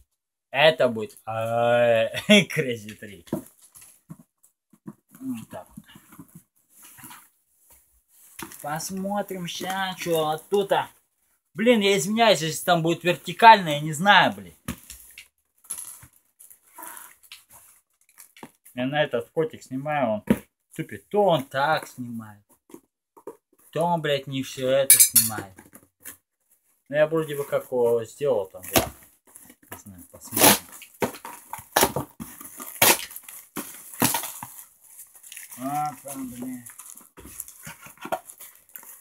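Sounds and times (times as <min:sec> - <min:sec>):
packaging being torn open: 0:31.8 - 0:33.3.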